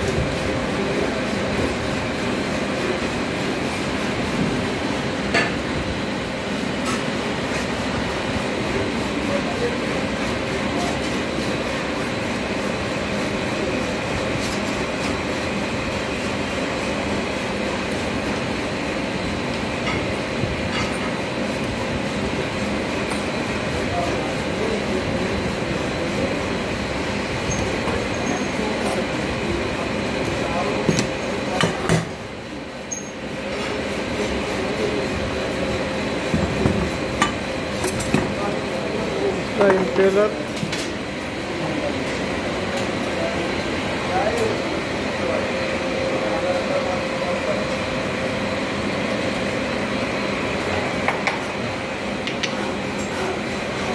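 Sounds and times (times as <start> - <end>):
machine shop drone: 0.0 - 53.9.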